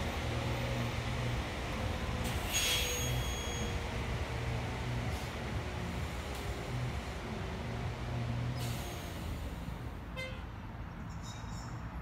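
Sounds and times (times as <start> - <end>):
bus idling: 0.0 - 10.9.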